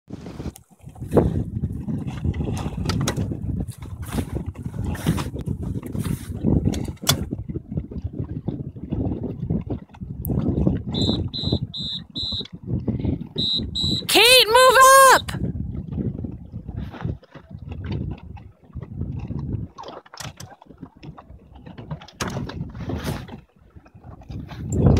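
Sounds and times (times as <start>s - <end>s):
wind buffeting microphone: 0.1s - 14.2s, 15.2s - 24.9s
choppy water: 0.1s - 24.9s
short high electronic beeps: 11.0s - 12.5s, 13.4s - 14.1s.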